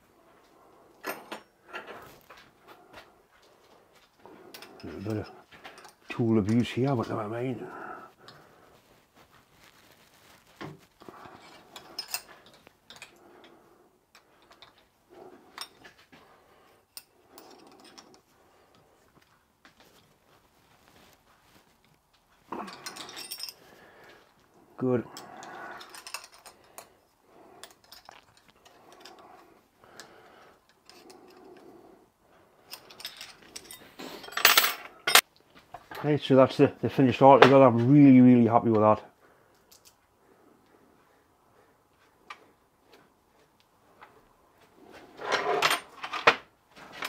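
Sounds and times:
tools clattering on workbench: 0:01.0 - 0:02.1, 0:32.7 - 0:36.0, 0:45.2 - 0:47.0.

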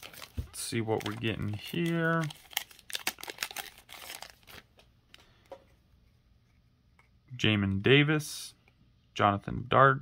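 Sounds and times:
foil wrapper crinkling: 0:00.0 - 0:05.3.

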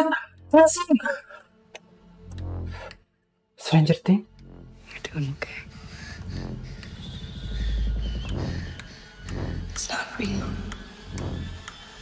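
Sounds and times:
deep low drone: 0:01.8 - 0:03.2, 0:04.1 - 0:12.0
soft spoken dialogue: 0:03.6 - 0:05.8.

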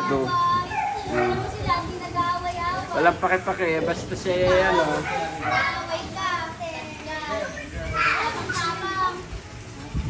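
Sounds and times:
chatter of voices: 0:00.0 - 0:10.0.

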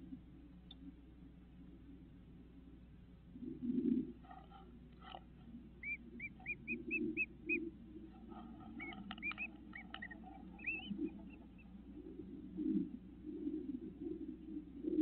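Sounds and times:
bird chirping: 0:04.2 - 0:12.8.

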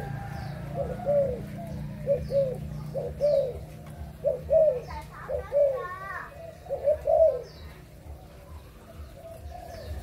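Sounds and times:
dove cooing: 0:00.0 - 0:10.0.

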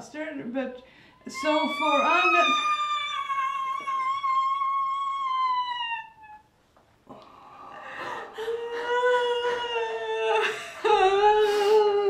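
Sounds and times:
person wailing: 0:01.3 - 0:06.4.

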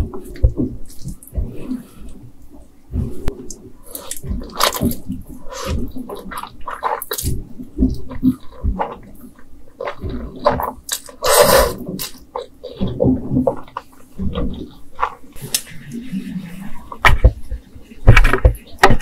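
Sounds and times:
slurping noodles: 0:09.8 - 0:13.0.

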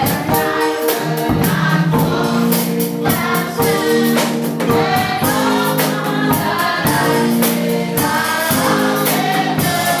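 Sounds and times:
choir singing gospel song: 0:00.0 - 0:10.0
steady percussive beat: 0:00.0 - 0:10.0.

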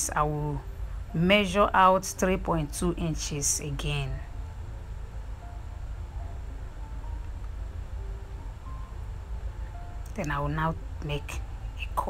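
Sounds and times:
faint background music: 0:00.0 - 0:12.0
steady low rumble: 0:00.0 - 0:12.0.

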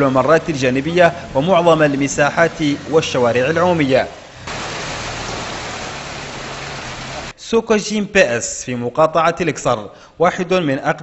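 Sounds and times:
car tyre splashing through water: 0:00.4 - 0:07.4.

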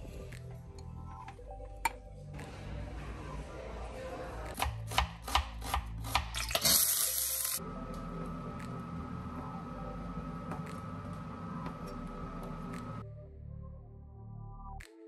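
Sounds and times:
steady hum: 0:07.6 - 0:13.0.

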